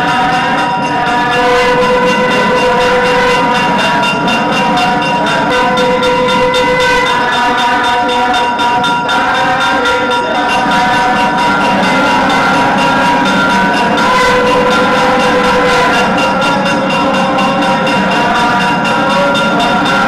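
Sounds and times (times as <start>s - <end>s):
drum strokes: 0.0s - 20.0s
reed pipe long notes: 0.0s - 20.0s
steady drone: 0.0s - 20.0s.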